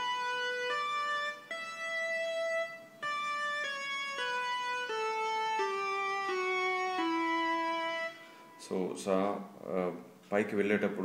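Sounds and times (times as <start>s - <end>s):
electronic keyboard descending scale: 0.0s - 9.1s.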